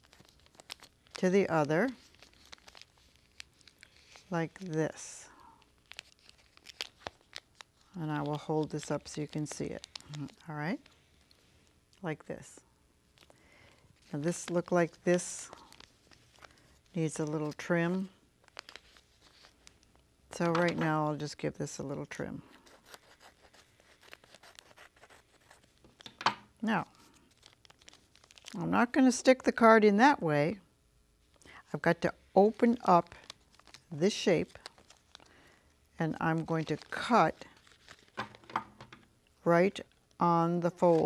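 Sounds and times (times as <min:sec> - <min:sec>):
wrapping paper crinkling: 0:00.0 - 0:11.8, 0:13.1 - 0:21.4, 0:22.3 - 0:28.8, 0:32.4 - 0:38.8, 0:39.8 - 0:41.0.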